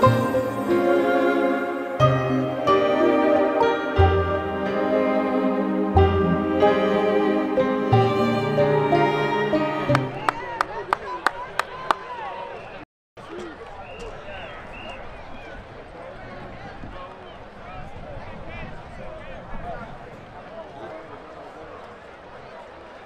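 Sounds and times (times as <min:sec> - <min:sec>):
crowd chatter: 0:00.0 - 0:23.0.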